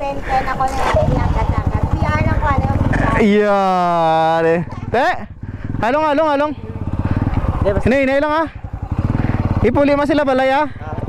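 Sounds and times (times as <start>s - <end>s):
voices: 0.0s - 11.0s
motorcycle engine running: 0.6s - 11.0s.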